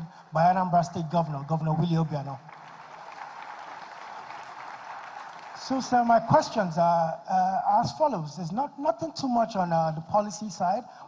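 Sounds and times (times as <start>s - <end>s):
audience applauding: 2.2s - 6.4s.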